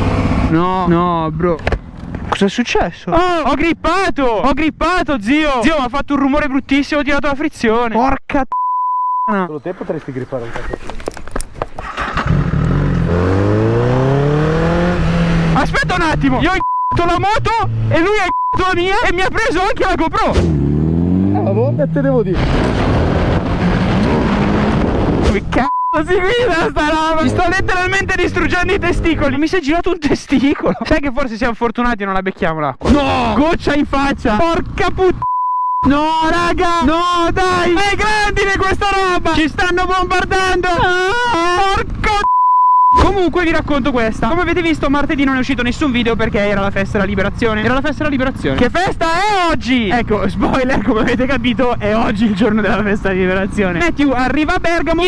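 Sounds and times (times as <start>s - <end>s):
motorcycle engine accelerating: 0.0s - 0.9s, 11.8s - 18.1s, 20.3s - 25.2s, 26.5s - 29.4s
high-pitched censor bleep: 8.5s - 9.3s, 16.6s - 17.0s, 18.2s - 18.7s, 25.6s - 26.1s, 35.2s - 35.9s, 42.2s - 43.0s
man shouting: 40.4s - 42.3s.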